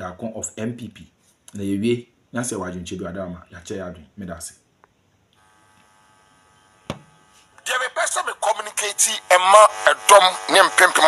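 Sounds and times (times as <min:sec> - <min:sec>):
faint electrical buzz: 0:00.0 - 0:11.0.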